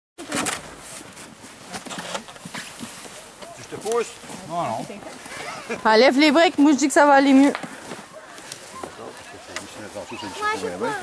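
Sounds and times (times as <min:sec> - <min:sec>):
voices: 0:03.0 - 0:11.0.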